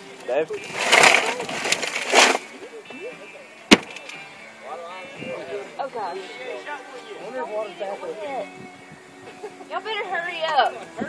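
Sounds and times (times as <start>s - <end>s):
sharp gunshot: 3.7s - 4.0s
people laughing: 9.2s - 11.0s.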